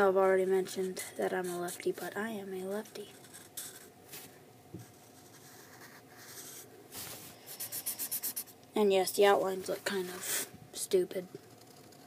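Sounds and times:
marker scratching on paper: 0.7s - 2.0s, 3.2s - 8.5s.

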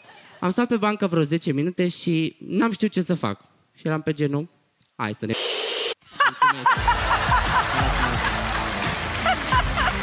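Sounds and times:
woman laughing heartily: 6.1s - 8.4s, 9.2s - 10.0s
audience laughter: 6.1s - 10.0s
show music: 6.8s - 10.0s.

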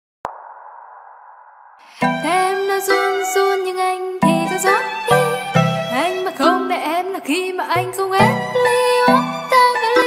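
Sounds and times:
sharp electronic hit: 0.2s - 1.8s.

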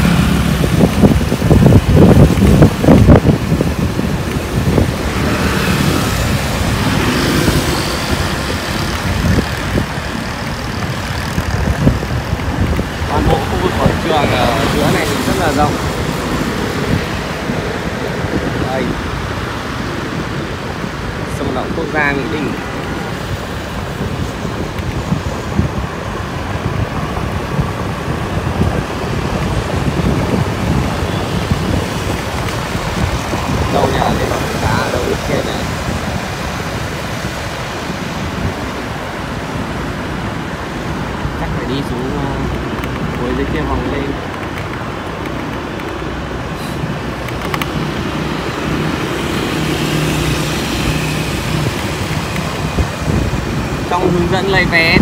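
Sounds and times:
motorbike riding noise: 0.0s - 55.0s
wind buffeting microphone: 0.0s - 55.0s.

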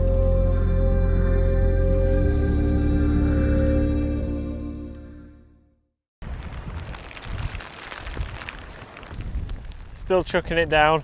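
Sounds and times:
wind gusting on microphone: 6.2s - 11.0s.

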